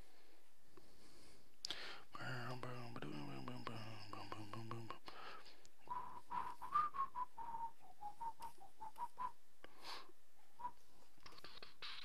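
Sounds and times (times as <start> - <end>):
faint clicks: 1.6 - 1.8, 8.2 - 9.3
person whistling a tune: 5.9 - 9.4, 10.6 - 10.8.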